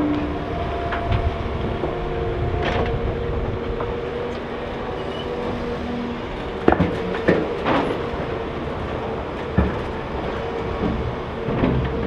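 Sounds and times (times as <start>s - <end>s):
excavator diesel engine under load: 0.0s - 12.0s
hydraulic whine: 0.0s - 12.0s.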